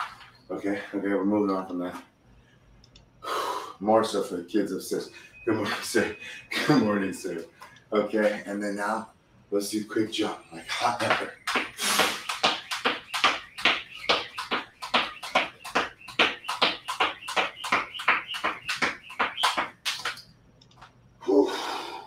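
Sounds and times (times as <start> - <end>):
feet landing: 10.7 - 20.2
jump rope slapping floor mat: 11.0 - 20.2.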